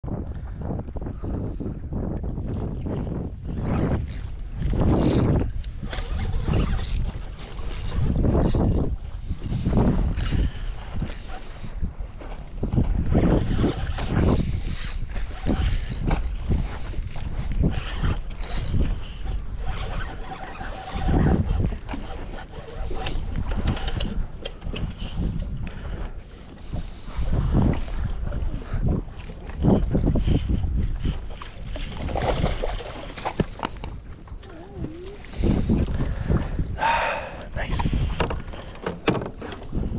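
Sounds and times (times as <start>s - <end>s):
wind buffeting microphone: 0.0s - 39.9s
water slapping kayak hull: 2.0s - 39.9s
fish thrashing and water splashing: 31.5s - 39.0s.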